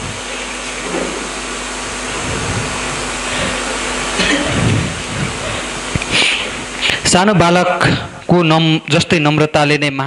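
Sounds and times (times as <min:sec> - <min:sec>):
steady rushing background noise: 0:00.0 - 0:08.4.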